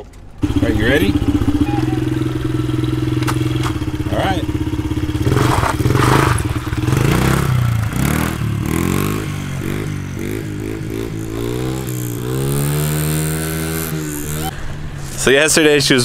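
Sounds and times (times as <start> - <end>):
dirt bike engine accelerating: 0.0 - 16.0.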